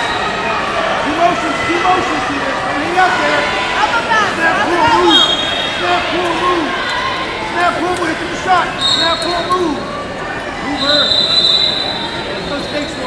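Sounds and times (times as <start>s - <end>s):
hubbub of voices: 0.0s - 13.0s
thin high whistle: 5.1s - 5.7s, 10.8s - 13.0s.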